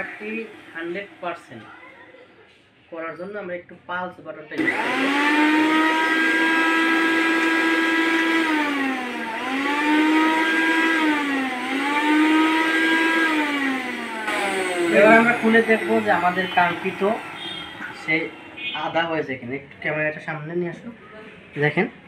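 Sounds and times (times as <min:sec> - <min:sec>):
mixer grinder motor grinding: 0:00.0 - 0:01.7, 0:04.6 - 0:18.9.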